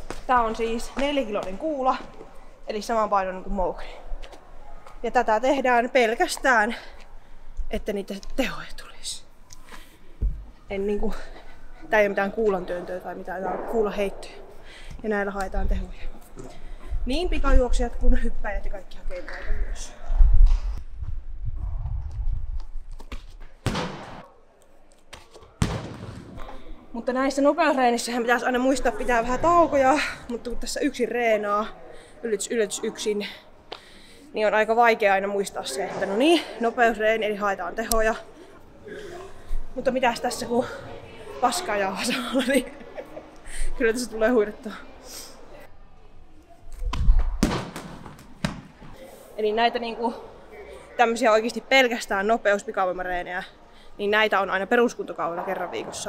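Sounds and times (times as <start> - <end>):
heavy ball thudding in a hall: 23.6 - 24.4, 25.1 - 26.7, 46.9 - 49.0.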